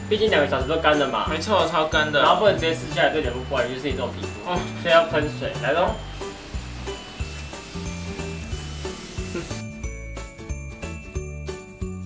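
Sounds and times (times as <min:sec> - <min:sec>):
sleigh bells ringing: 0:00.1 - 0:12.0
bass line: 0:01.9 - 0:10.8.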